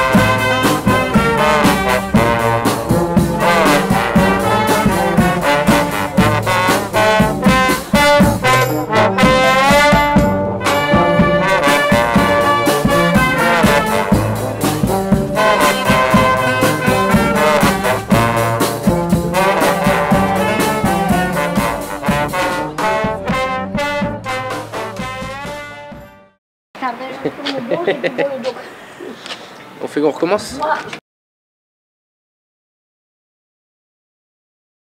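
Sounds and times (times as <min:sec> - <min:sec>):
percussion: 0:00.0 - 0:26.3
brass band playing: 0:00.0 - 0:26.4.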